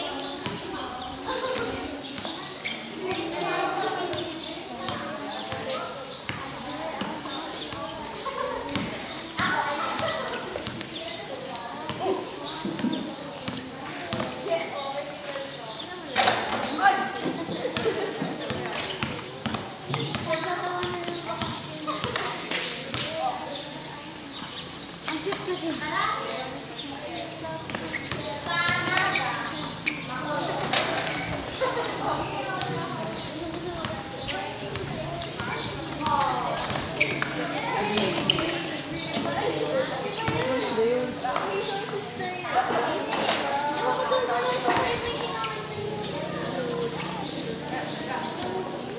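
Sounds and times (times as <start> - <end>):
people calling out and talking: 0.0 - 48.9
players shouting and chatting: 0.0 - 48.9
basketball bouncing on concrete: 0.4 - 0.7, 4.1 - 7.9, 17.7 - 22.3, 22.9 - 23.1, 27.7 - 29.1, 34.7 - 38.6, 40.2 - 40.6.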